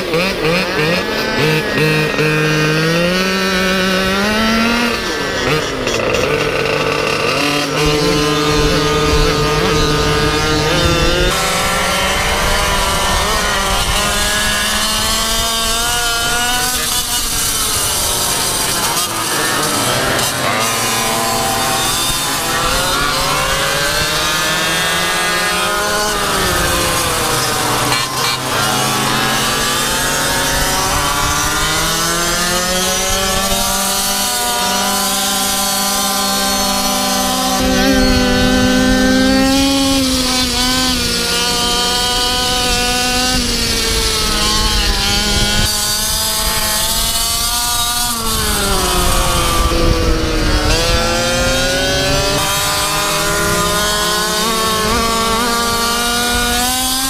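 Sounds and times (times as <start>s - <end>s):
other scooter engines running: 0.0s - 57.0s
small two-stroke engine revving: 0.0s - 57.0s.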